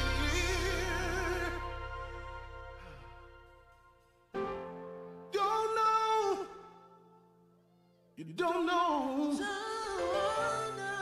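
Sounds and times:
gospel song with solo singer: 0:00.0 - 0:04.0, 0:05.2 - 0:07.0, 0:08.2 - 0:11.0
sustained accompaniment: 0:00.0 - 0:04.5.

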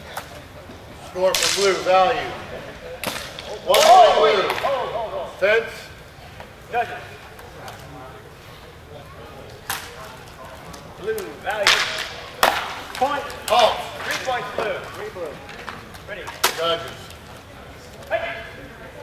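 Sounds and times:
voices calling out: 0:00.0 - 0:19.0.

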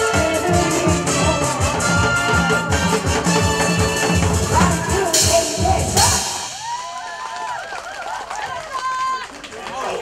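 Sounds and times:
music with drum beat: 0:00.0 - 0:07.1
people talking and calling out: 0:04.4 - 0:07.4.

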